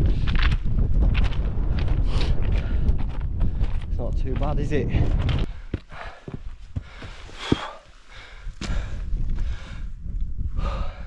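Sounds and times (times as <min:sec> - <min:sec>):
footsteps on loose rock: 0:00.0 - 0:07.9
wind rumble on microphone: 0:00.0 - 0:11.0
heavy breaths: 0:05.4 - 0:11.0.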